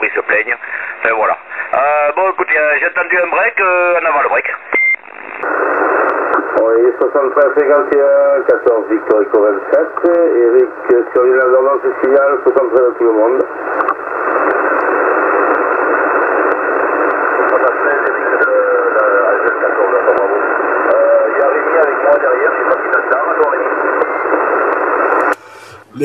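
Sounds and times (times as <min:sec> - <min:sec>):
radio hiss: 0:00.0 - 0:26.0
faint voice over radio: 0:17.3 - 0:24.0.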